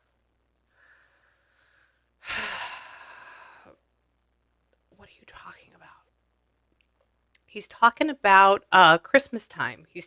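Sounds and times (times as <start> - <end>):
woman breathing in: 0.7 - 3.8
woman sighing: 2.2 - 3.8.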